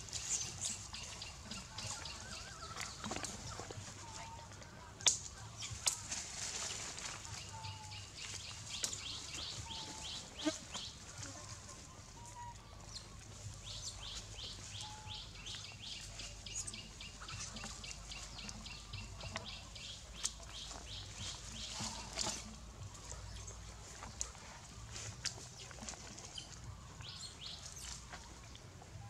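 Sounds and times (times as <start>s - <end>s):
monkeys rustling in dry leaves: 0.0s - 29.0s.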